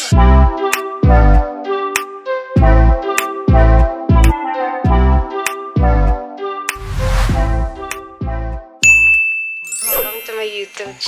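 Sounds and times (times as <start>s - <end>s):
electronic music with falling bass: 2.6s - 8.7s
bright chime: 8.8s - 11.0s.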